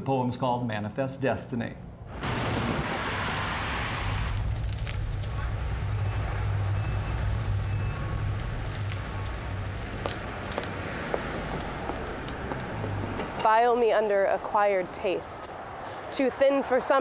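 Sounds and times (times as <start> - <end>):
low rumble of street traffic: 1.7 - 17.0
car tyre hiss passing: 2.2 - 5.6.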